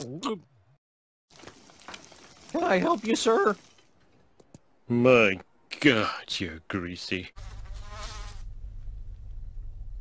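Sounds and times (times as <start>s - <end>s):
cartoon housefly buzzing: 7.4s - 8.5s.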